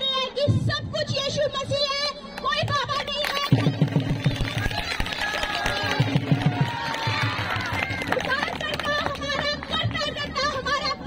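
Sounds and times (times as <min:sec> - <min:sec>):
low drumbeats: 0:03.5 - 0:11.0.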